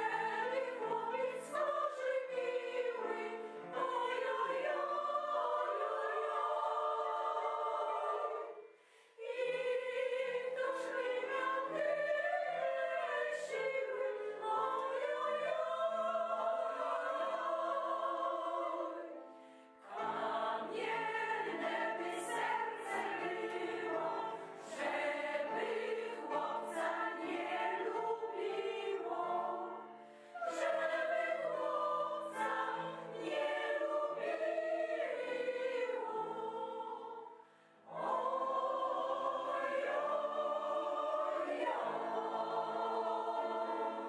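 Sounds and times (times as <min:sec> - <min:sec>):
mixed choir singing: 0:00.0 - 0:44.0.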